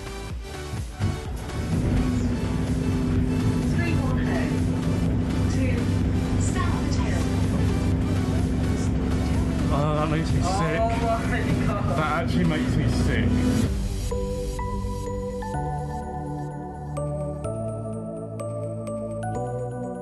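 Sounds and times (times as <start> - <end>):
background music: 0.0 - 20.0
bus engine drone: 0.7 - 15.2.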